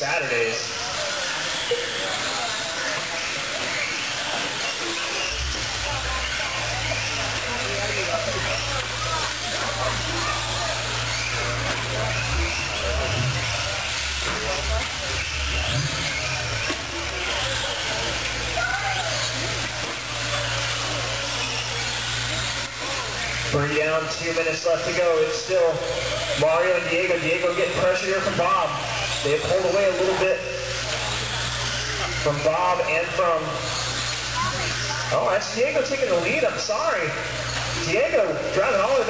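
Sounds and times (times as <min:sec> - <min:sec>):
electric motors whining: 0:00.0 - 0:39.0
voices in background: 0:00.0 - 0:39.0
tyre and track noise: 0:00.9 - 0:39.0.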